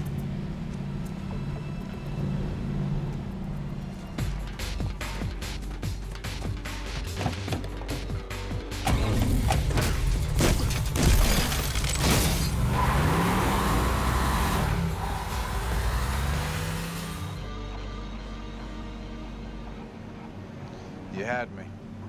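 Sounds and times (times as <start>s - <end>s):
film score music: 0.0s - 22.0s
tyres skidding on dirt: 11.6s - 17.4s
car engine revving: 11.9s - 17.5s.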